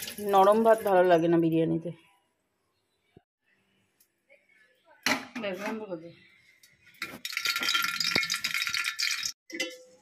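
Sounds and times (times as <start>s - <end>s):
ghee sizzling in a pot: 0.0s - 1.5s.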